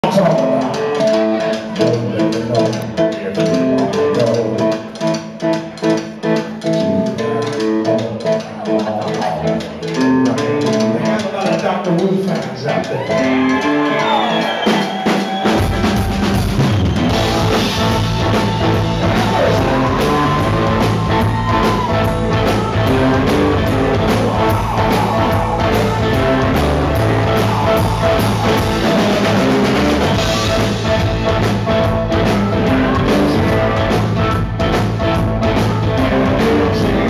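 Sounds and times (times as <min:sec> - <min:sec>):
blues-rock band playing: 0:00.0 - 0:37.0
drums: 0:00.0 - 0:37.0
electric guitars with bent notes: 0:00.0 - 0:37.0.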